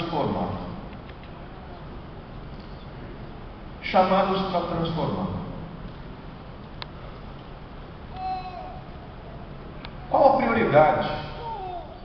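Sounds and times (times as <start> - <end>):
steady background hum: 0.0 - 12.0
faint voice-like hum: 8.1 - 10.2.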